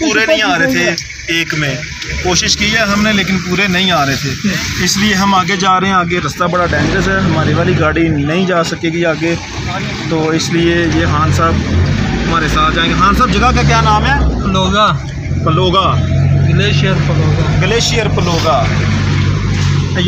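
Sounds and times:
road noise: 0:00.0 - 0:20.0
van engine hum: 0:00.0 - 0:20.0
voices talking: 0:00.0 - 0:20.0.

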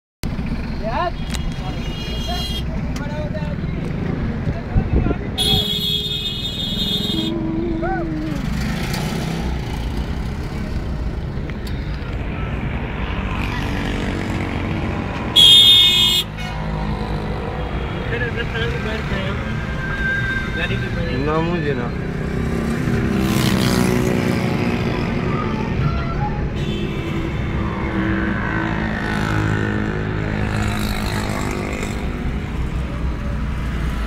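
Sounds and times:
car road and engine rumble: 0:00.2 - 0:34.0
vehicle horn honks: 0:05.4 - 0:07.4, 0:15.3 - 0:16.4.

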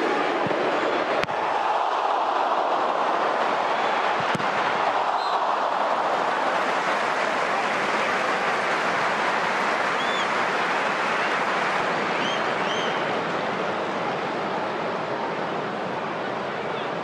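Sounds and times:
stadium crowd roaring: 0:00.0 - 0:17.0.

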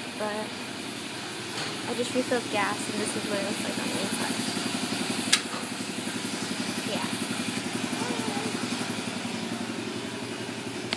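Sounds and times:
engine idling: 0:00.0 - 0:10.9.

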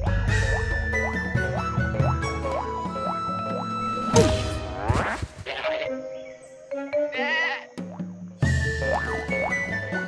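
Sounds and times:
background music: 0:00.0 - 0:10.0
cartoon sheep bleat: 0:05.4 - 0:05.9, 0:07.1 - 0:07.7.

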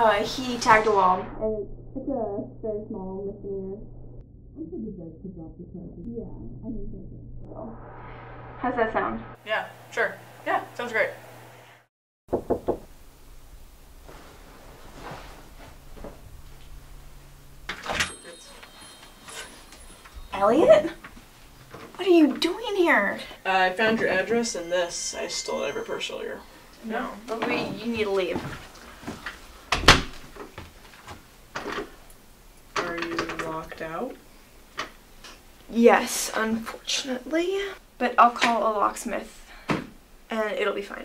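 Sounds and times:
knocks on a door: 0:12.3 - 0:12.9.

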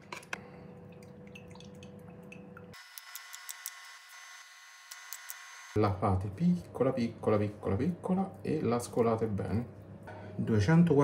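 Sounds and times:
background hum: 0:00.0 - 0:04.2.

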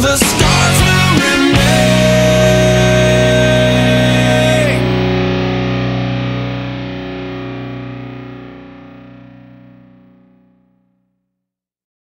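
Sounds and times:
distorted electric guitar chord: 0:00.0 - 0:11.2.

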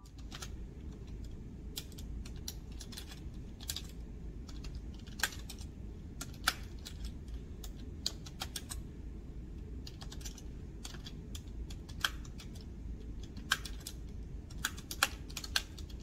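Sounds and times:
computer keyboard typing: 0:00.0 - 0:08.9, 0:09.8 - 0:16.0
steady low background hum: 0:00.0 - 0:16.0.

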